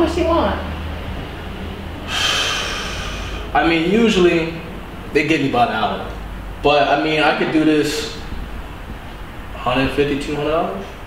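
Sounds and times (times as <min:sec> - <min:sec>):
low steady room hum: 0:00.0 - 0:11.0
man exhaling a breathy sigh: 0:02.0 - 0:03.5.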